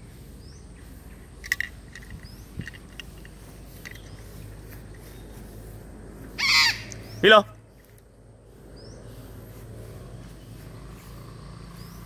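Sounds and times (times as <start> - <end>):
parrot squawk: 6.4 - 6.9.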